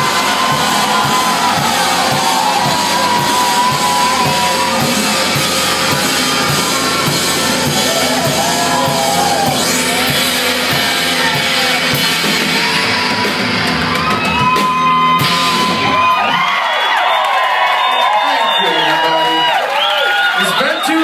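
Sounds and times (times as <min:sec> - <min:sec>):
live rock band playing: 0:00.0 - 0:16.4
audience yelling and whooping: 0:00.0 - 0:21.0.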